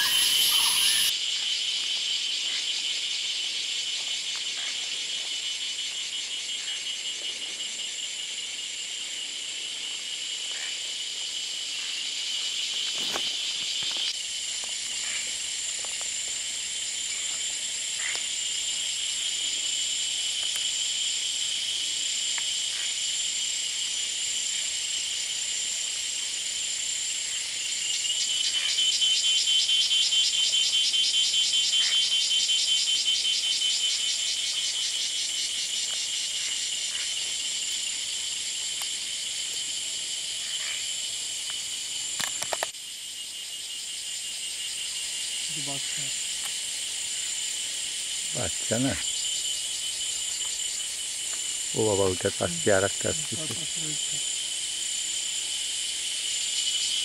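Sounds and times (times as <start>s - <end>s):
chorus of forest insects: 0.0s - 57.0s
rapidly pulsing insect call: 0.0s - 57.0s.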